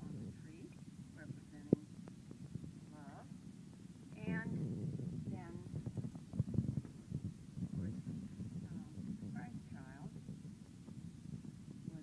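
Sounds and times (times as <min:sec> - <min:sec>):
faint rustling: 0:00.0 - 0:12.0.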